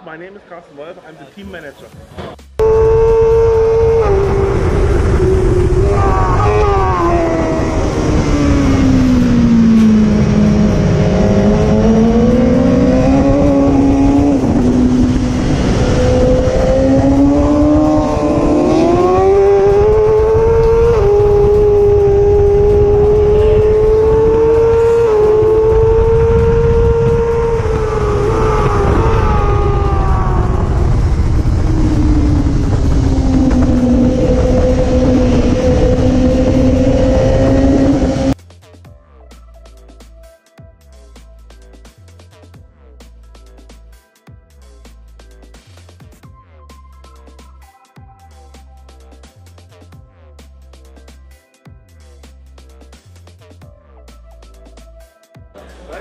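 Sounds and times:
racing motorcycle engine revving: 0:02.6 - 0:38.4.

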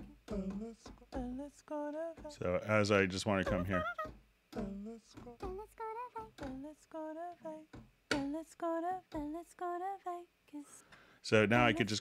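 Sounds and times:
sampled sung syllables: 0:00.0 - 0:10.2.

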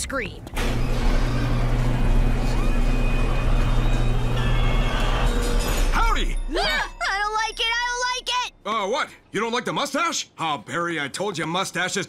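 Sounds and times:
garage door rising rumble: 0:00.4 - 0:06.1
tense background music: 0:00.6 - 0:08.6.

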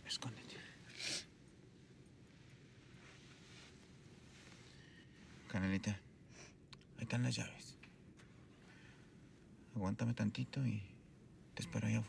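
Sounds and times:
faint low hiss: 0:00.0 - 0:12.0.

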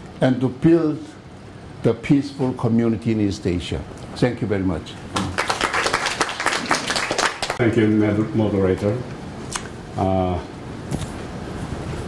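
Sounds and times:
audience applauding: 0:05.2 - 0:07.6.

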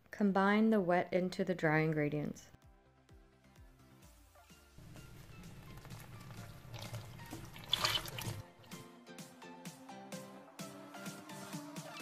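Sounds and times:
background music: 0:00.7 - 0:12.0
liquid pouring into metal bowl: 0:05.4 - 0:08.4.

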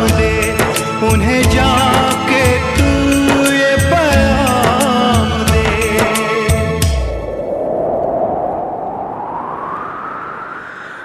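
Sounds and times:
hissy whooshing noise sweep: 0:06.8 - 0:11.0.

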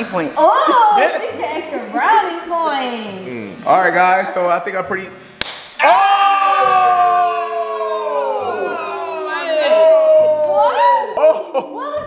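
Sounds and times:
slap on bald head: 0:05.4 - 0:05.8.

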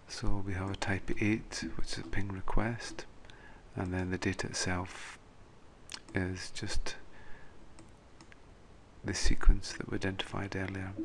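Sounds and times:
computer mouse clicks: 0:07.8 - 0:08.4.

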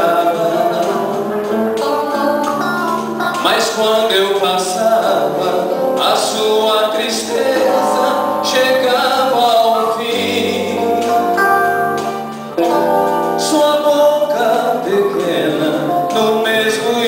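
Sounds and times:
man singing into a microphone: 0:00.0 - 0:11.4, 0:13.3 - 0:17.0
acoustic guitars: 0:00.0 - 0:17.0.

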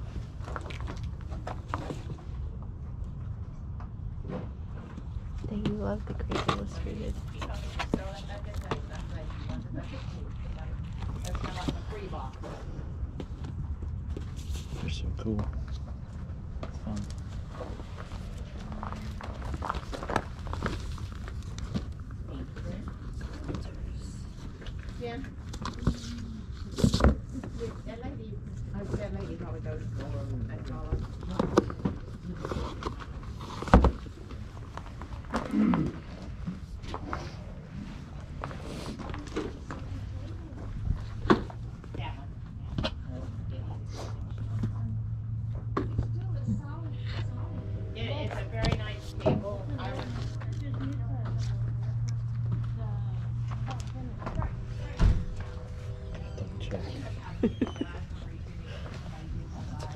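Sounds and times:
steady low rumble: 0:00.0 - 0:59.9
books and cases being handled: 0:16.6 - 0:27.8, 0:29.9 - 0:42.0
indistinct voices: 0:46.0 - 0:59.9.

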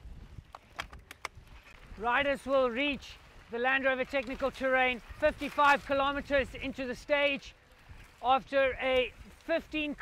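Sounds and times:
clicks and knocks from bikes: 0:00.4 - 0:01.9.

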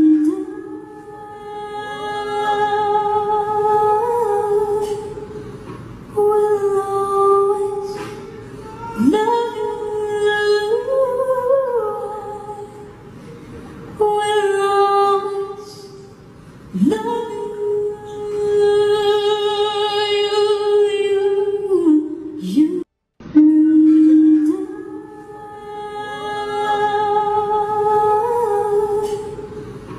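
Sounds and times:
person singing a long note: 0:00.0 - 0:05.1, 0:16.8 - 0:29.4.

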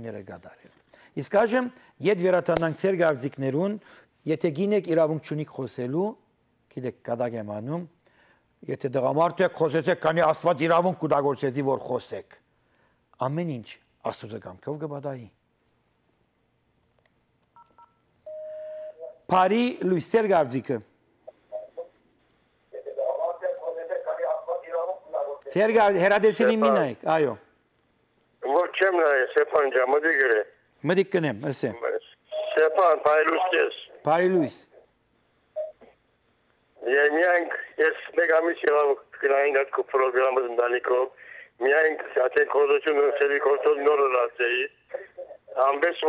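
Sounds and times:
touch-tone beeps: 0:17.6 - 0:19.0, 0:32.3 - 0:32.7
person talking: 0:22.7 - 0:27.4.

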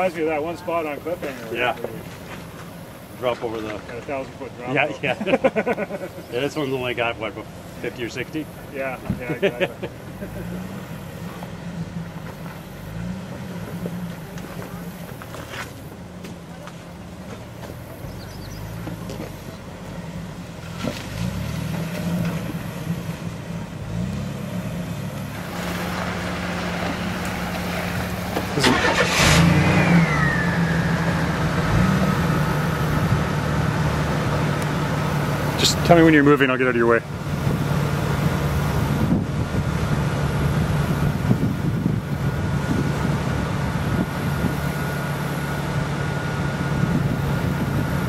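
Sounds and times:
car engine revving at low speed: 0:05.0 - 0:48.0.

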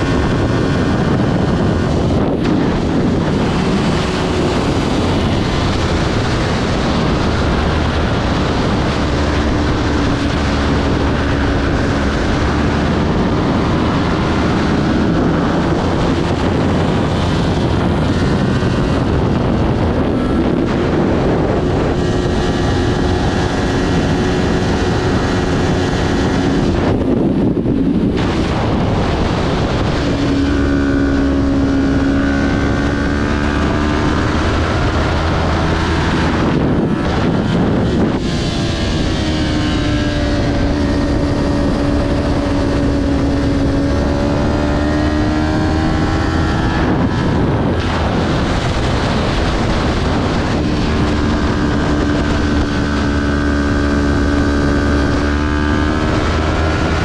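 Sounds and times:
motorcycle engine racing: 0:00.0 - 0:57.0
wind rushing over microphone: 0:00.0 - 0:57.0.

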